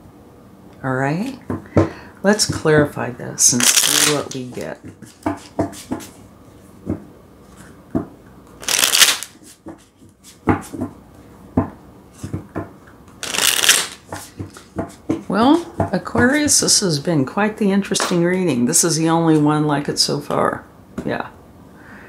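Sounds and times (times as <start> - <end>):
cards being shuffled: 3.5 - 6.1, 8.6 - 10.8, 13.1 - 15.0.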